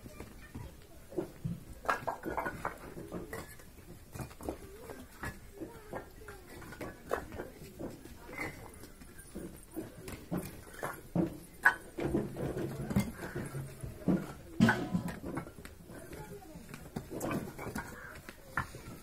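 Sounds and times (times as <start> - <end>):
bricks clinking and knocking: 0.0 - 19.0.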